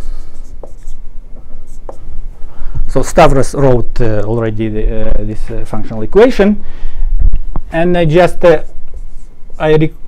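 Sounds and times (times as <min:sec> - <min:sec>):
marker writing on whiteboard: 0:00.0 - 0:02.1, 0:08.4 - 0:10.0
low room hum: 0:00.0 - 0:10.0.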